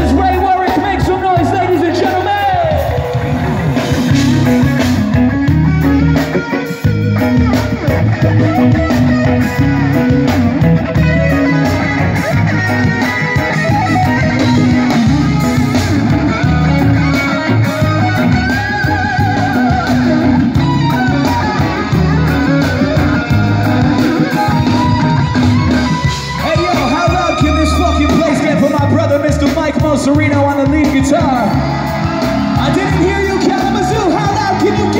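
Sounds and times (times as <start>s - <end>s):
rock band playing: 0.0s - 34.9s
wavering lead guitar line: 0.0s - 34.9s.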